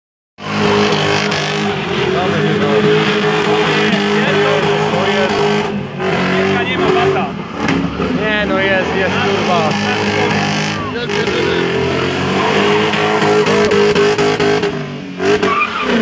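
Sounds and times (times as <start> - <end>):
car engine at high revs: 0.4 - 16.0
tyres squealing: 0.4 - 16.0.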